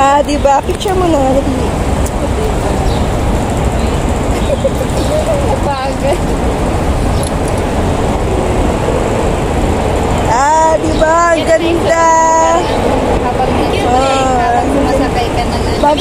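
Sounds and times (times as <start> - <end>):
woman's voice: 0.0 - 2.7, 4.4 - 6.2, 10.3 - 16.0
faint voices: 0.0 - 16.0
road traffic rumble: 0.0 - 16.0.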